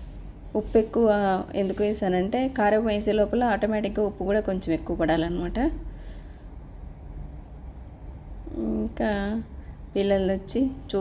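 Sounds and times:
low steady rumble: 0.0s - 11.0s
woman talking: 0.6s - 5.8s, 8.5s - 11.0s.

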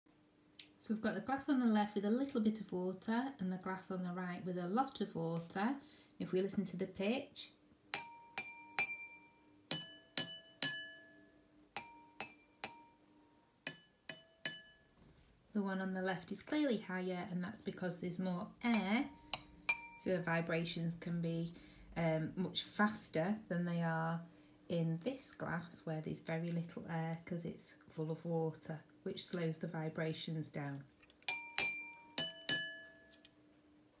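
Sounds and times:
water glasses tapped ringing: 8.0s - 11.0s, 31.3s - 33.0s.

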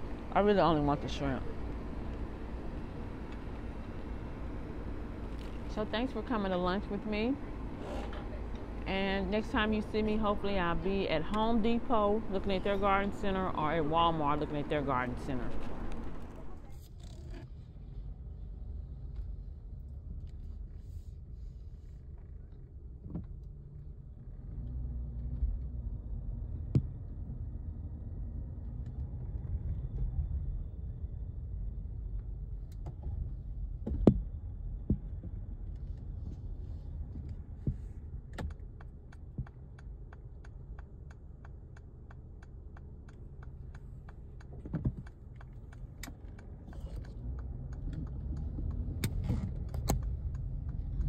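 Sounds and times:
car engine and road rumble: 0.0s - 51.0s.

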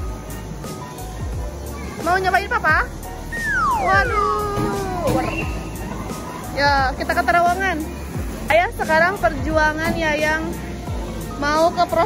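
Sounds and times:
background music: 0.0s - 12.0s
excited squeals: 3.3s - 5.7s.

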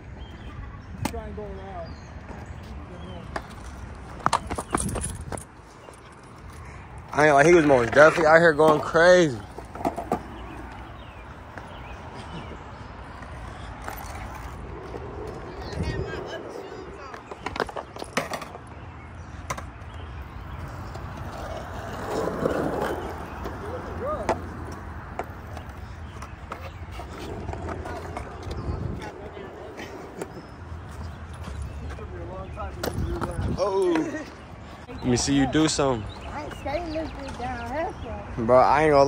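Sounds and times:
skateboard wheels rolling on concrete: 0.0s - 39.0s
skateboard clacks: 7.4s - 10.8s.

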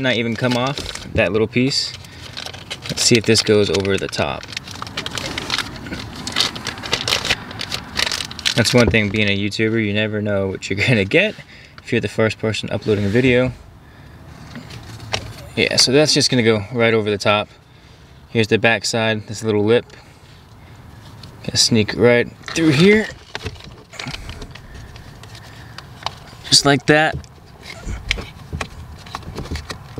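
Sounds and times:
plastic bag crinkling: 1.8s - 9.3s.

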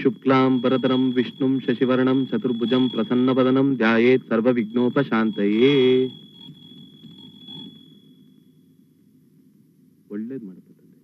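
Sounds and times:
high steady ringing tone: 0.0s - 10.4s
faint background noise: 0.0s - 11.0s.

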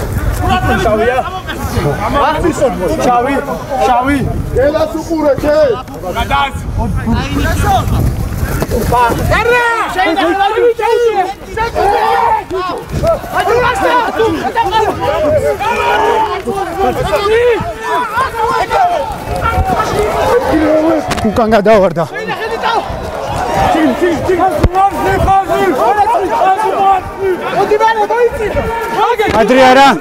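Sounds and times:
faint outdoor background noise: 0.0s - 30.0s
wind buffeting microphone: 0.0s - 30.0s
men calling out: 8.8s - 30.0s.

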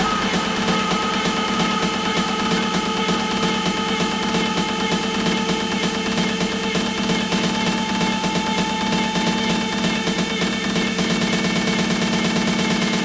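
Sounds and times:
techno music: 0.0s - 11.8s.

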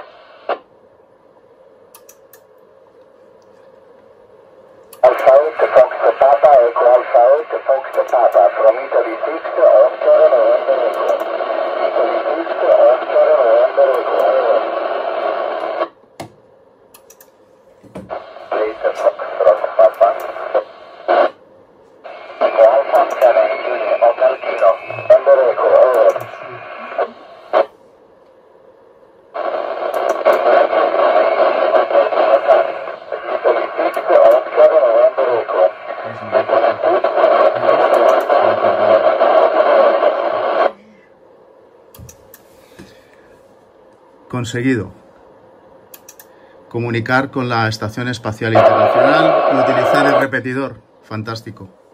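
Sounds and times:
noisy radio speech: 5.0s - 15.9s, 18.1s - 21.4s, 22.0s - 27.7s, 29.4s - 41.0s, 46.7s - 51.7s.

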